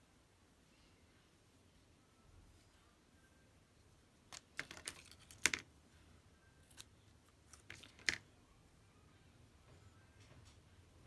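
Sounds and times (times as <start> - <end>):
paper rustling: 4.3 - 5.6.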